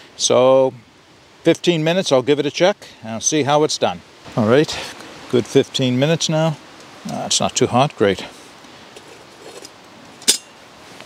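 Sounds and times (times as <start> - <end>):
metal kettle handle clink: 10.2 - 10.5.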